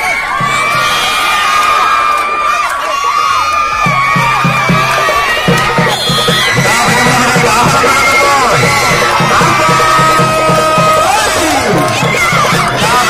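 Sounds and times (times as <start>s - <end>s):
spectators shouting and cheering: 0.0s - 13.0s.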